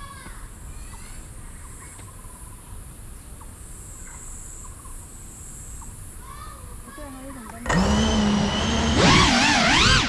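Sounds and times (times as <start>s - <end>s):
insects chorus in trees: 3.5s - 10.0s.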